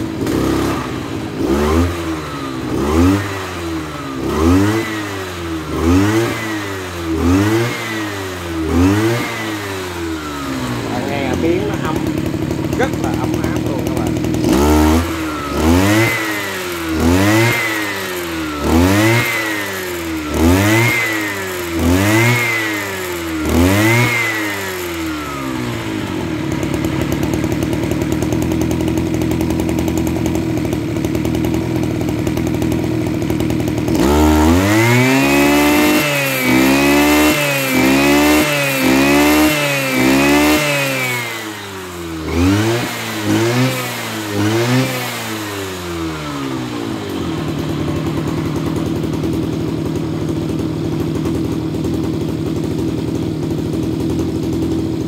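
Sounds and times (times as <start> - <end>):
brush cutter engine revving: 0.0 - 55.0.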